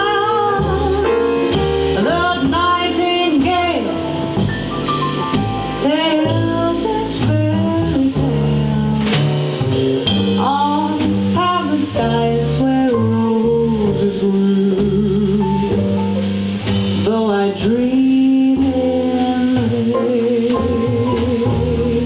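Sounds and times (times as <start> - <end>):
woman singing: 0.0 - 4.3, 5.8 - 9.4, 10.3 - 16.0, 17.0 - 22.0
drums: 0.0 - 22.0
piano: 0.0 - 22.0
plucked double bass: 0.0 - 22.0.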